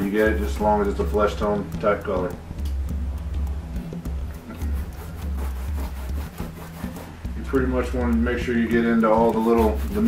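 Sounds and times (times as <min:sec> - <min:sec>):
paintbrush scrubbing paint: 0:00.0 - 0:00.6, 0:04.5 - 0:07.2, 0:09.2 - 0:10.0
background music: 0:00.0 - 0:10.0.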